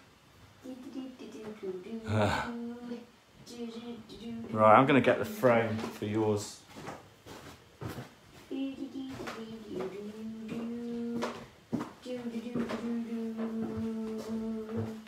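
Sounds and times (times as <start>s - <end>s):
person humming: 1.6s - 4.4s, 8.5s - 11.4s, 12.0s - 15.0s.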